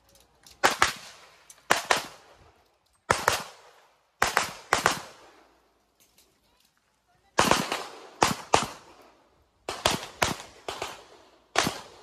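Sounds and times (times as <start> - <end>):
pistol shots echoing: 0.6 - 2.3, 3.1 - 5.4, 7.4 - 9.0, 9.6 - 12.0.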